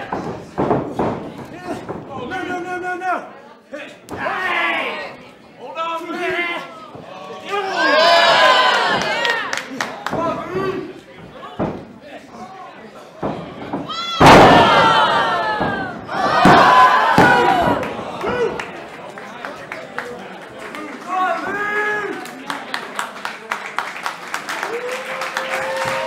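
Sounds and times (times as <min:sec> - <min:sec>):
people yelling: 0:06.2 - 0:09.6, 0:13.9 - 0:18.7
sharp thud: 0:13.7 - 0:17.8.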